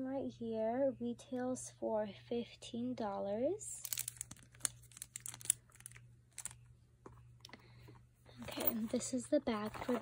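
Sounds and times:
cosmetic pouch rustling: 0:03.8 - 0:06.6
hands handling makeup brush: 0:03.8 - 0:07.2.

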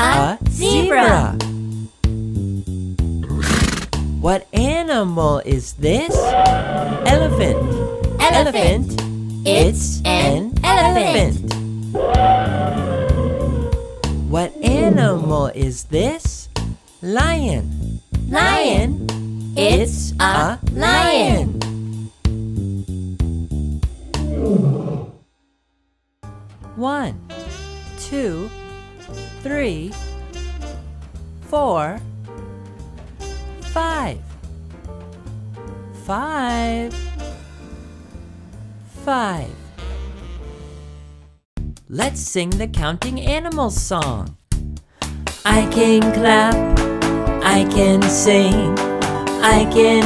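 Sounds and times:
light children's music: 0:00.0 - 0:01.6, 0:04.2 - 0:11.5, 0:18.2 - 0:21.7, 0:26.3 - 0:37.8, 0:45.1 - 0:50.0
zebra call: 0:06.1 - 0:08.7, 0:12.0 - 0:15.4
lion roar falling in pitch: 0:24.0 - 0:25.2.

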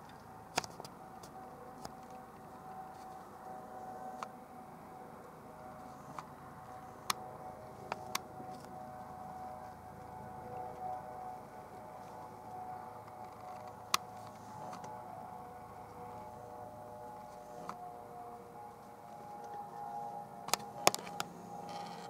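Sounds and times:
distant helicopter whine: 0:00.0 - 0:22.0
low hum: 0:00.0 - 0:22.0.

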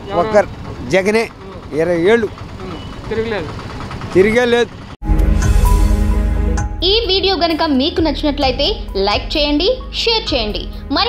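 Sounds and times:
man speaking: 0:00.0 - 0:03.5
auto-rickshaw engine idling: 0:00.0 - 0:05.0.

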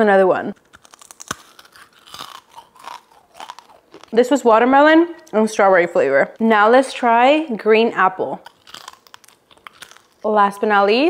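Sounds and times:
candy crunching: 0:00.5 - 0:05.6, 0:08.3 - 0:10.6.

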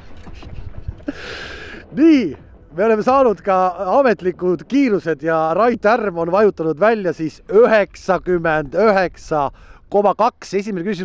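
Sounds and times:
steady low rumble: 0:00.0 - 0:11.0
man laughing breathily: 0:00.2 - 0:01.9
long hissing breath: 0:01.1 - 0:01.9, 0:09.5 - 0:09.9.

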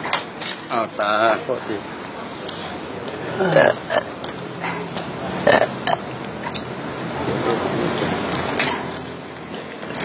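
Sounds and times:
person burping: 0:03.3 - 0:04.1, 0:05.4 - 0:06.0.

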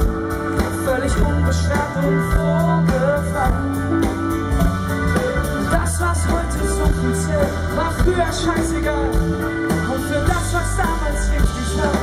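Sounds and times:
bass: 0:00.0 - 0:12.0
man singing: 0:00.0 - 0:12.0.

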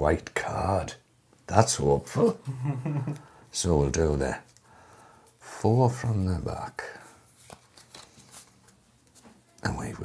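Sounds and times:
trading cards being shuffled: 0:07.3 - 0:09.5.

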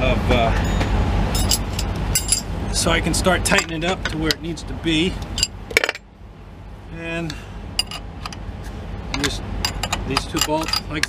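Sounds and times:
steady low rumble: 0:00.0 - 0:11.0
wrench clinking on metal bolts: 0:09.2 - 0:11.0.

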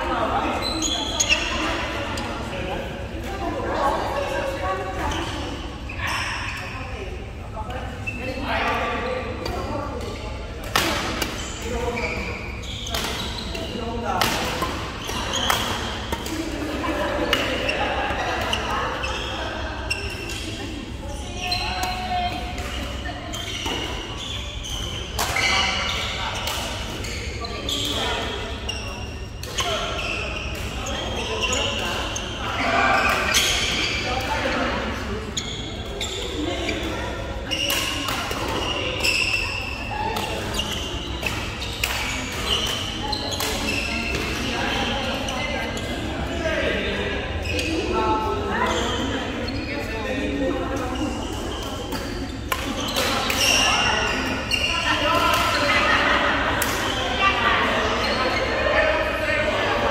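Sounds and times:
voices echoing in hall: 0:00.0 - 0:59.9.

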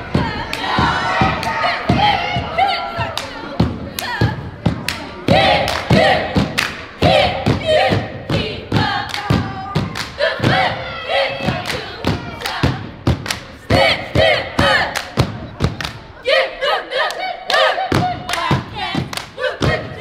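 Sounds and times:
rhythmic clapping: 0:00.0 - 0:16.2, 0:17.0 - 0:20.0
group chanting a cheer: 0:00.0 - 0:20.0.

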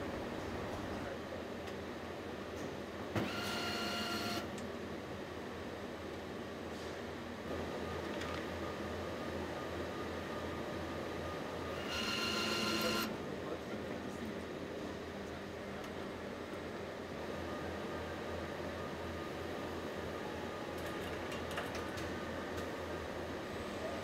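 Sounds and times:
steady factory hum: 0:00.0 - 0:24.0.

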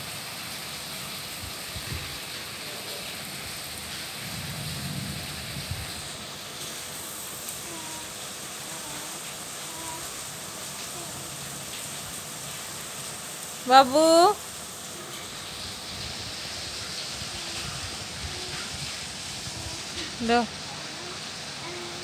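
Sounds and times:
steady background hiss: 0:00.0 - 0:22.0
faint voice-like sounds: 0:07.6 - 0:10.2, 0:17.1 - 0:22.0.

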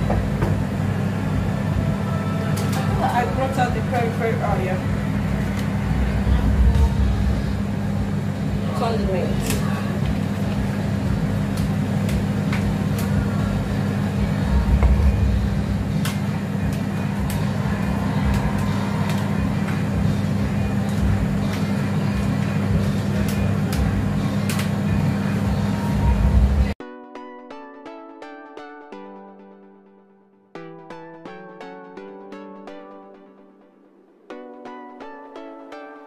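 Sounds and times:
low kitchen hum: 0:00.0 - 0:26.8
music: 0:00.0 - 0:36.0
utensils and packaging clicking: 0:22.8 - 0:24.9.

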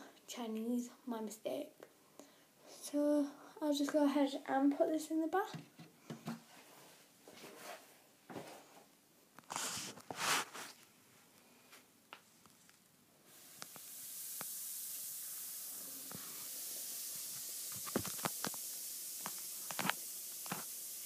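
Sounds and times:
bath bomb fizzing: 0:13.3 - 0:21.0.

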